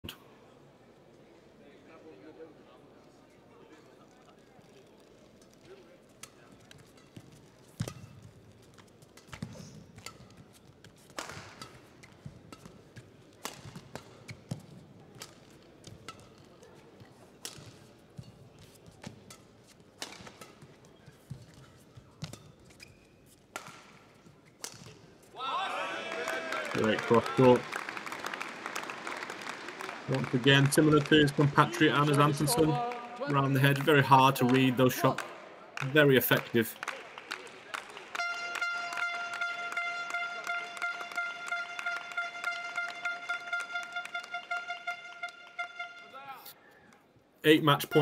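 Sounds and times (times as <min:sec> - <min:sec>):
rackets hitting shuttlecock: 0:06.2 - 0:25.2
crowd cheering: 0:25.4 - 0:46.6.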